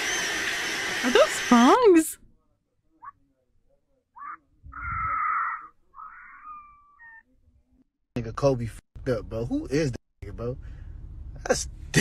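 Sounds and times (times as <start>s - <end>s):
drawn-out whine: 0.0s - 2.1s.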